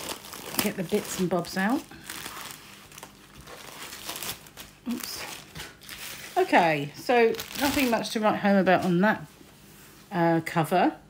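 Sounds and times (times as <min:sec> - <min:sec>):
plastic wrapper crinkling: 0:00.0 - 0:08.9.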